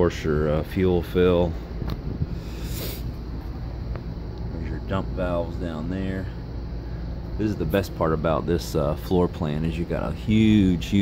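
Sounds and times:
air conditioning hum: 0:00.0 - 0:11.0
wind hiss on microphone: 0:01.8 - 0:03.2.

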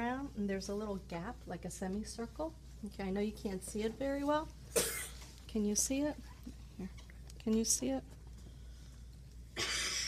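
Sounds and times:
steady low hum: 0:00.0 - 0:10.0
loud cough: 0:04.7 - 0:05.2, 0:09.6 - 0:10.0.

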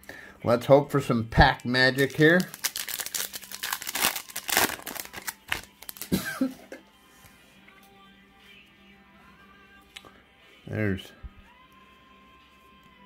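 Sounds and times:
faint background music: 0:00.0 - 0:13.0
plastic wrapper crinkling and tearing: 0:01.5 - 0:06.2.

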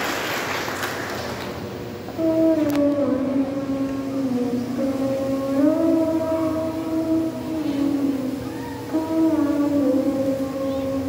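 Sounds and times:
voices singing a hymn: 0:02.2 - 0:11.0.

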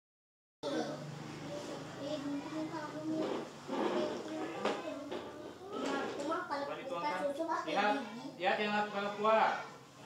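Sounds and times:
children chattering: 0:00.6 - 0:10.0.

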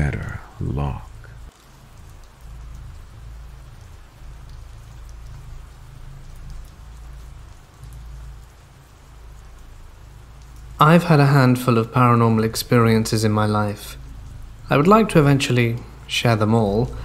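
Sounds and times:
hiss of falling rain: 0:00.0 - 0:17.0.

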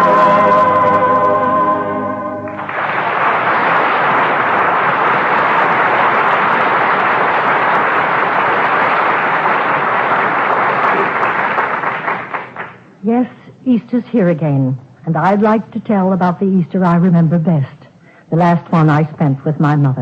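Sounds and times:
studio audience applauding: 0:02.5 - 0:12.8.

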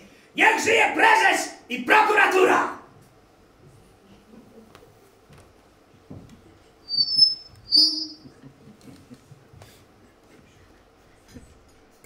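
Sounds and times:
high-pitched whistle-like tones: 0:06.9 - 0:08.3.

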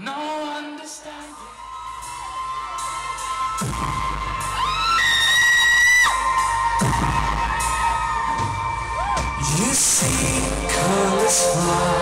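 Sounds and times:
crowd: 0:00.0 - 0:12.0
low bass drone: 0:06.6 - 0:12.0.

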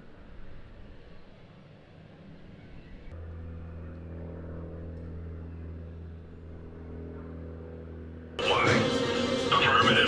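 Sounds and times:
low humming drone: 0:00.0 - 0:10.0.

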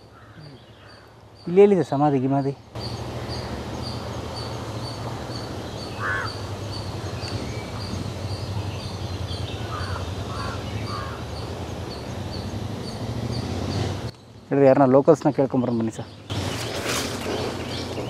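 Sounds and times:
bird calls: 0:00.0 - 0:14.4, 0:15.1 - 0:18.0.

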